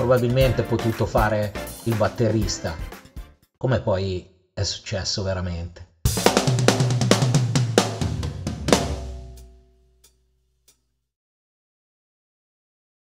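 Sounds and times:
drum kit fill: 0.0s - 3.3s, 6.1s - 10.0s.

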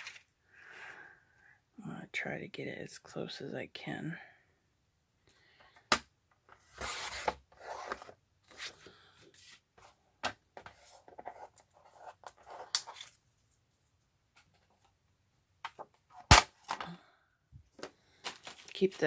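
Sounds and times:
card rustling: 0.0s - 0.3s, 10.6s - 13.6s, 17.8s - 19.0s.

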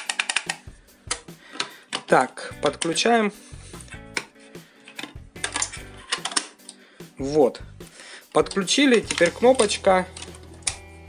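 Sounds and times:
hard plastic clicks and taps: 0.0s - 3.0s, 3.9s - 4.3s, 4.9s - 6.8s, 8.5s - 10.8s.

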